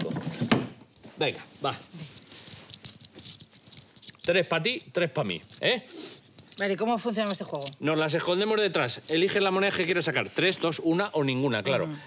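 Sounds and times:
coins jingling: 0.0 - 7.9.

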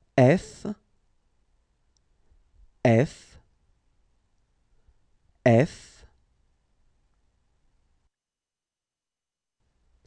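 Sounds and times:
man pronouncing a letter: 0.0 - 0.8, 2.8 - 3.5, 5.4 - 6.2.

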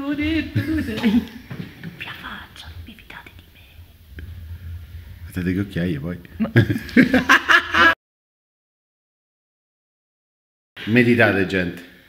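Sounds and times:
faint low hum: 0.0 - 8.0
person whispering: 1.9 - 4.0.

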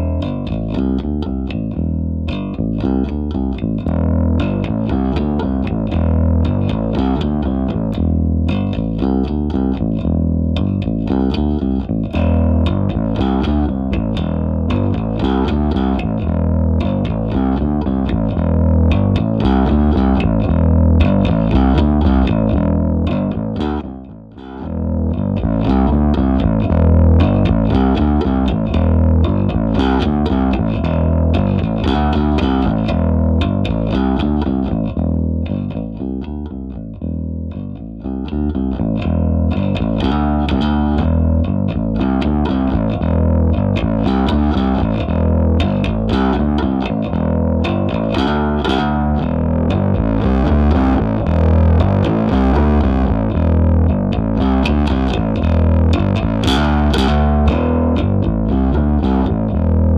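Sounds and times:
overdriven electric bass guitar: 0.0 - 59.9.

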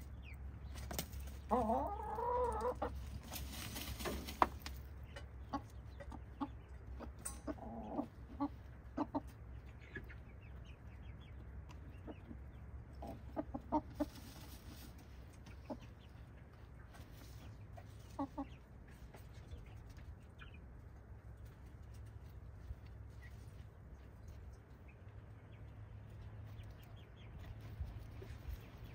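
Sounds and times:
hens clucking: 0.0 - 28.9.

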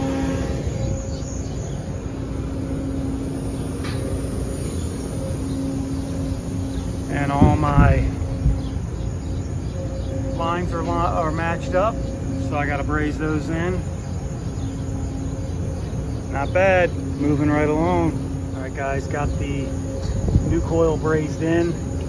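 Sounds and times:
machinery hum: 0.0 - 22.0.

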